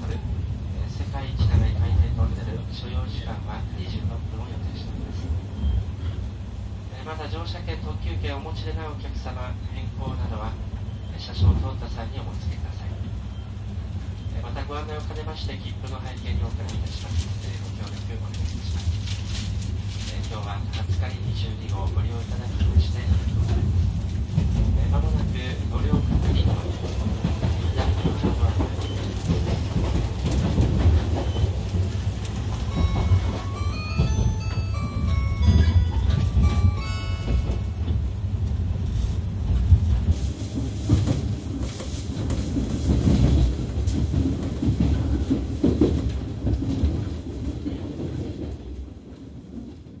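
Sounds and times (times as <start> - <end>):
train interior rumble: 0.0 - 50.0
high chime melody: 32.7 - 38.0.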